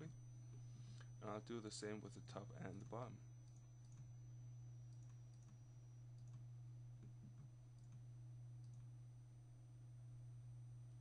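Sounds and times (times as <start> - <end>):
low hum: 0.0 - 11.0
computer mouse clicks: 4.9 - 5.6, 6.2 - 6.4, 7.0 - 8.0, 8.6 - 8.9.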